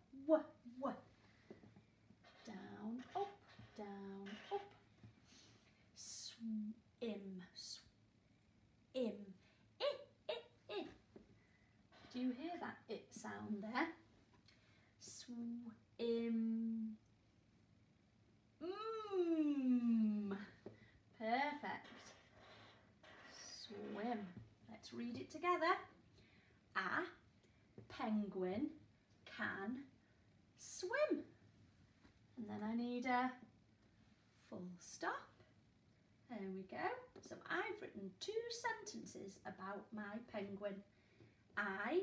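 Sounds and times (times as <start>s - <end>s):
marker squeaking on whiteboard: 2.2s - 5.0s, 21.7s - 24.3s.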